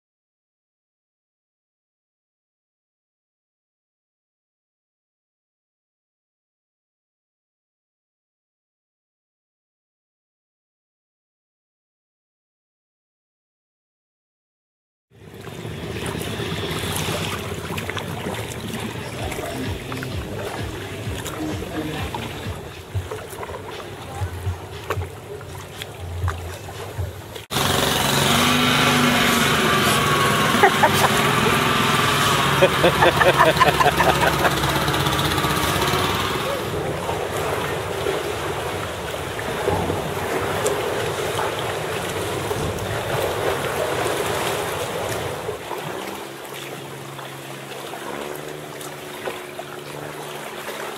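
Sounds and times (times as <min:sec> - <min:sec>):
water sloshing: 0:15.2 - 0:27.6, 0:28.3 - 0:50.9
paddle strokes: 0:15.3 - 0:27.6, 0:28.3 - 0:50.9
indistinct voices: 0:18.5 - 0:27.4, 0:28.8 - 0:37.3.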